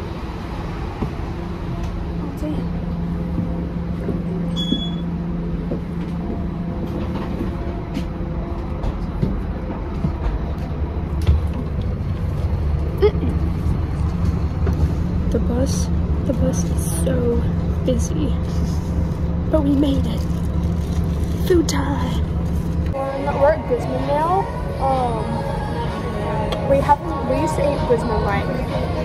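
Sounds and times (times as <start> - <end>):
bus engine rumble: 0.0 - 29.0
short high electronic beep: 4.5 - 5.0.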